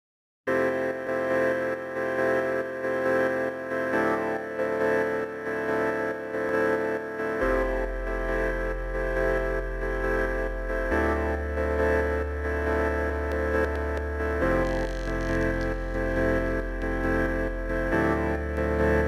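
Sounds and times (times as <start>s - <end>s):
slow sustained chords: 7.4s - 19.0s
deep bass note: 13.1s - 19.0s.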